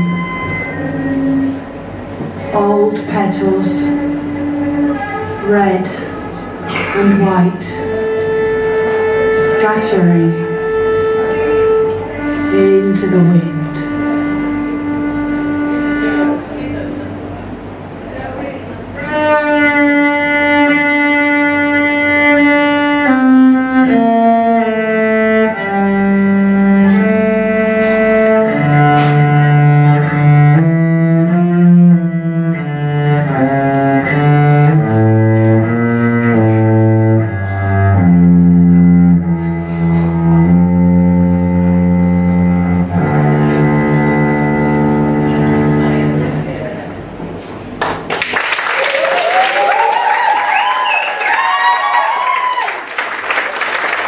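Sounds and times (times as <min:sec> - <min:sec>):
cello playing slow melody: 0:00.0 - 0:18.2, 0:18.8 - 0:47.2.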